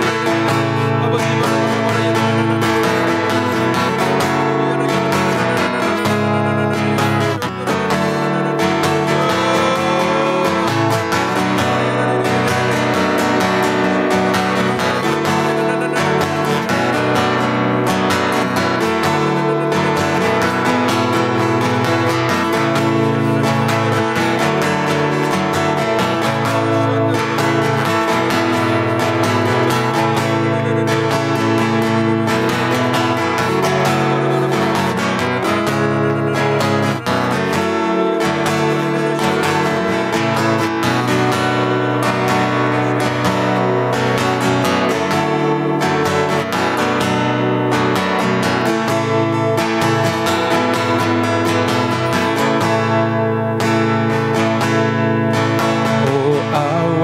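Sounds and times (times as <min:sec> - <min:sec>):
acoustic guitar strumming chords: 0:00.0 - 0:57.0.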